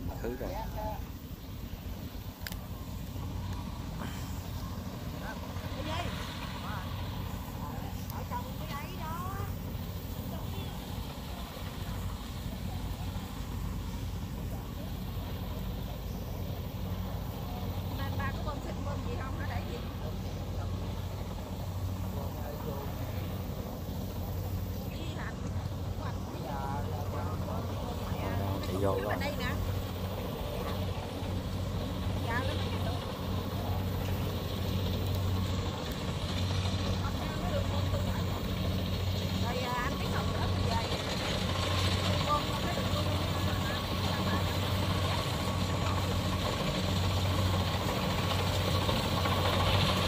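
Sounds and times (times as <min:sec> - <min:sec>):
combine harvester engines droning: 0:00.0 - 0:50.0.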